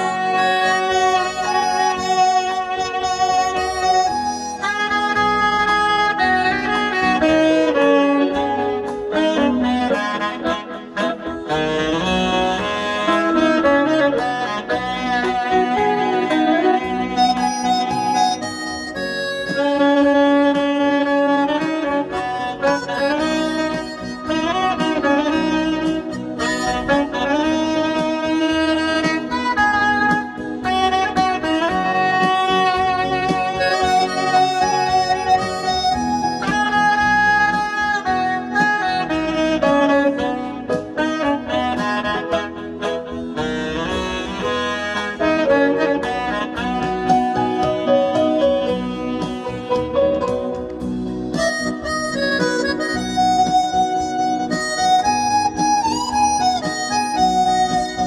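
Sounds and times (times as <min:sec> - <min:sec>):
keyboard backing: 0:00.0 - 0:58.0
saxophone melody: 0:00.0 - 0:58.0.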